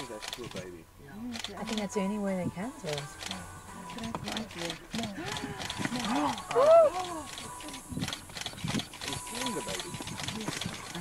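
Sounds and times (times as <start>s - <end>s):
murmur of overlapping voices: 0.0s - 11.0s.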